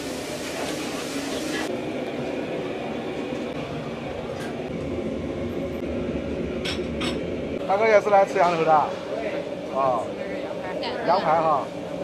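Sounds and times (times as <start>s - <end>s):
hiss of charcoal fire burning: 0.0s - 1.8s.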